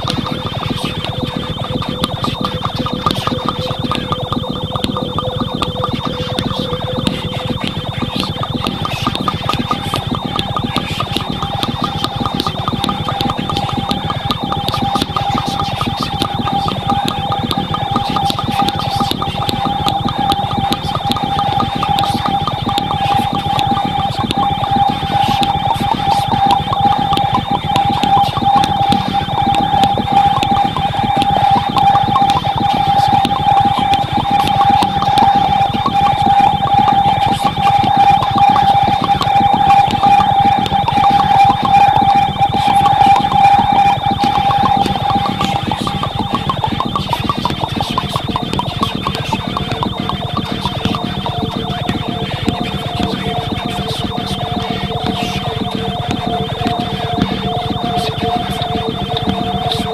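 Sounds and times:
dense rapid crackling: 0:00.0 - 0:59.9
high electronic tone: 0:00.0 - 0:59.9
low held electronic tones: 0:00.0 - 0:59.9.

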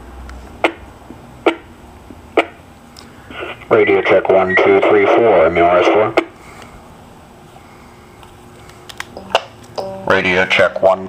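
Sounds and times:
faint low hum: 0:02.0 - 0:11.0.

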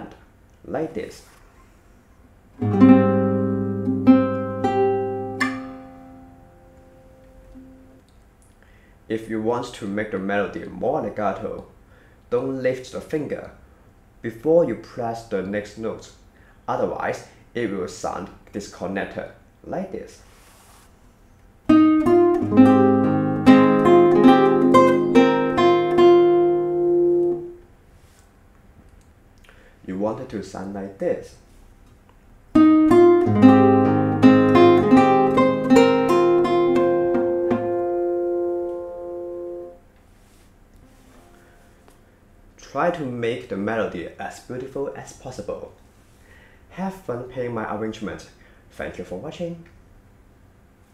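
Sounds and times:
classical guitar fingerstyle chords: 0:02.6 - 0:08.0, 0:21.7 - 0:27.6, 0:32.5 - 0:39.8.

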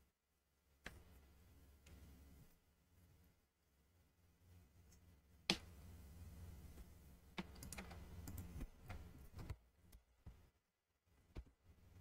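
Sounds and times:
faint low hum: 0:00.0 - 0:12.0
computer mouse clicks: 0:07.3 - 0:10.4.

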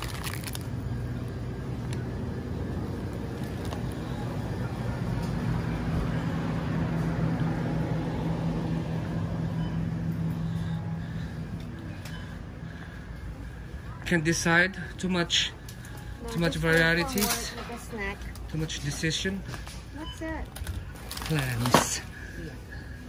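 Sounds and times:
plastic packaging crinkling: 0:00.0 - 0:00.9
shopping cart rolling: 0:16.3 - 0:19.3.

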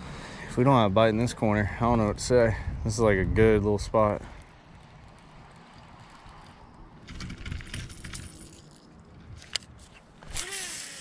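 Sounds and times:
wind rumble on microphone: 0:01.5 - 0:08.2.

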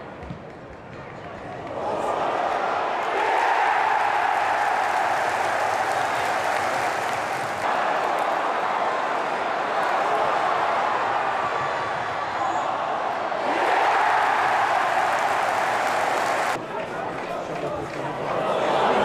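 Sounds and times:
stadium crowd cheering: 0:01.3 - 0:19.0.

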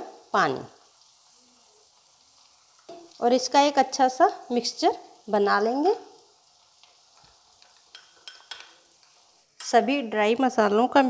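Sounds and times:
spoon stirring thick paste: 0:06.8 - 0:09.4.

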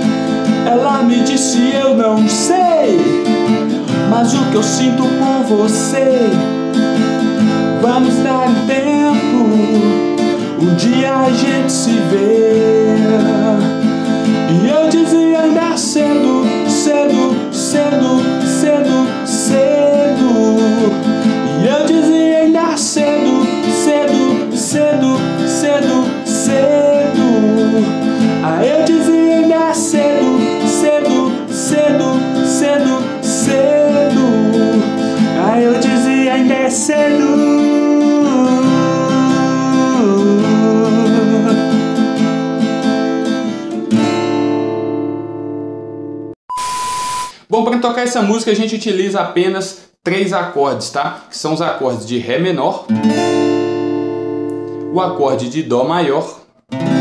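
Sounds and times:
acoustic guitar strumming: 0:00.0 - 0:46.4, 0:52.9 - 0:55.5, 0:56.6 - 0:57.0.

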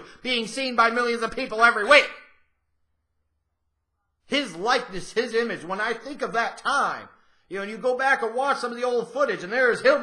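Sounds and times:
man's voice: 0:00.0 - 0:02.3, 0:04.2 - 0:10.0.

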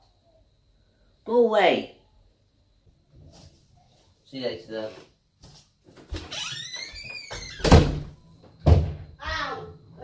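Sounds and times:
door slamming: 0:06.1 - 0:09.0
door hinge squeak: 0:06.3 - 0:07.9.

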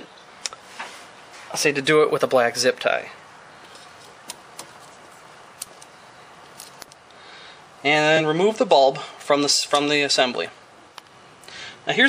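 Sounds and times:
faint hiss: 0:05.2 - 0:12.0.

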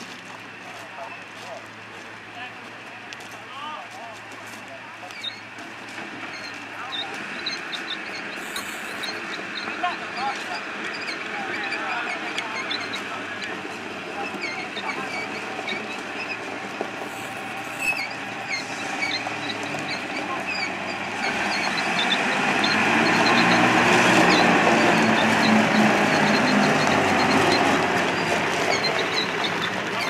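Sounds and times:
armoured car engine driving past: 0:05.2 - 0:30.0.

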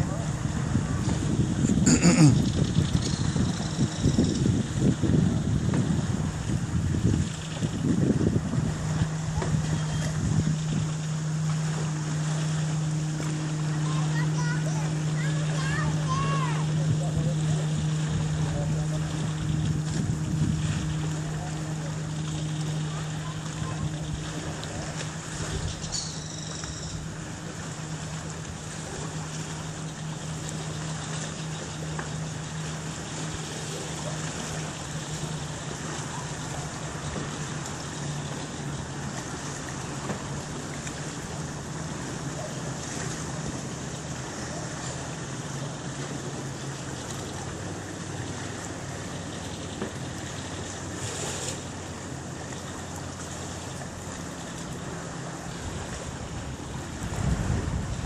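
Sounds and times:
wind on microphone: 0:00.0 - 0:11.8, 0:15.8 - 0:22.0, 0:55.5 - 0:58.0
lapping water: 0:00.0 - 0:58.0
motorboat engine drone: 0:00.0 - 0:58.0.

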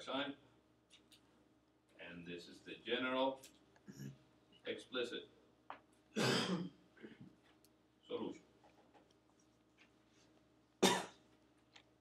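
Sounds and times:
man coughing: 0:06.2 - 0:06.7, 0:10.8 - 0:11.2.

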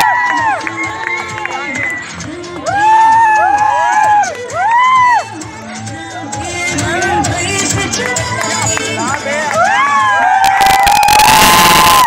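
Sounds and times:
crowd cheering loudly: 0:00.0 - 0:02.0, 0:02.6 - 0:05.4, 0:09.3 - 0:12.0
dance music with sung note: 0:00.0 - 0:12.0.

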